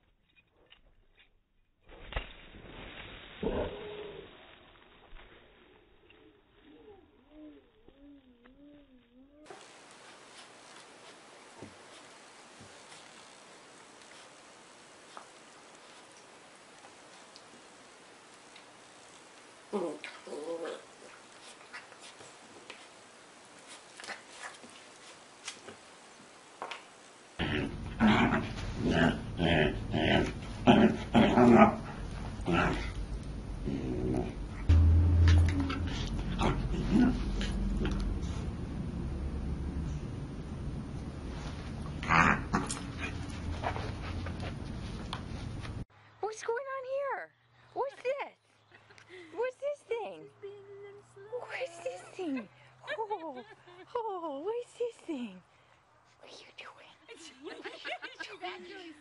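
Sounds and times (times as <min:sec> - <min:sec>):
faint hiss: 0:02.4 - 0:27.7
dog low growl: 0:19.7 - 0:21.1, 0:27.4 - 0:38.6
low wavering voice: 0:33.6 - 0:38.2.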